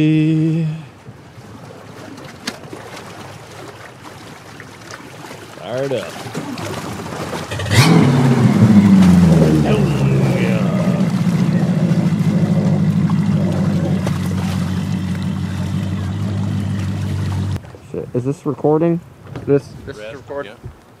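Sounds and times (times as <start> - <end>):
outboard motor running: 5.6 - 17.6.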